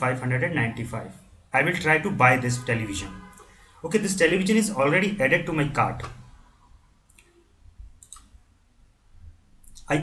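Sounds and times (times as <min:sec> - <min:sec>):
computer mouse clicks: 0:07.1 - 0:08.4.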